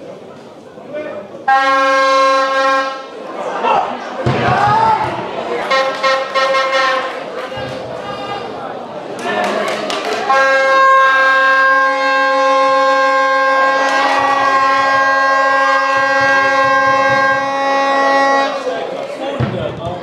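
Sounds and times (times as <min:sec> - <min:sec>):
spectators' voices: 0:00.0 - 0:20.0
horn held on one note: 0:10.3 - 0:18.8.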